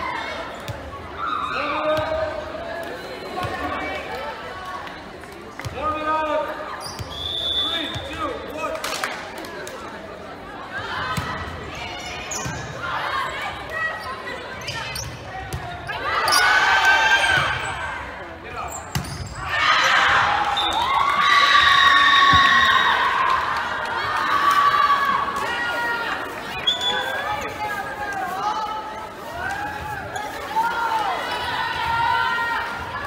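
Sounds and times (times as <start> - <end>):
crowd shouting and cheering: 15.6 - 18.4, 19.3 - 33.0.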